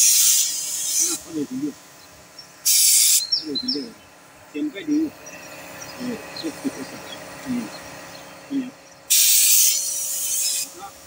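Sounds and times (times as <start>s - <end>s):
spray paint gun hissing: 0.0s - 3.3s, 9.0s - 11.0s
quiet voices talking: 1.0s - 1.9s, 3.2s - 8.9s.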